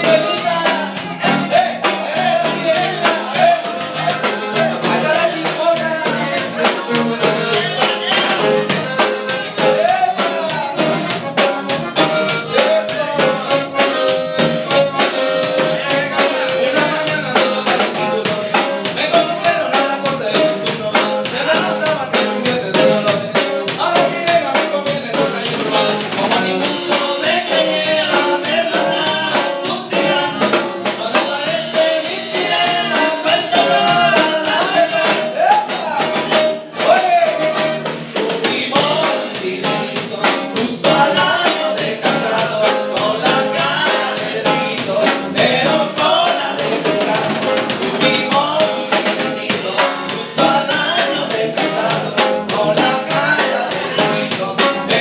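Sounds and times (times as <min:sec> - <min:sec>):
drum kit beat: 0:00.0 - 0:55.0
electric bass: 0:00.0 - 0:55.0
man singing into microphone: 0:00.0 - 0:55.0
twelve-string guitar: 0:00.0 - 0:55.0.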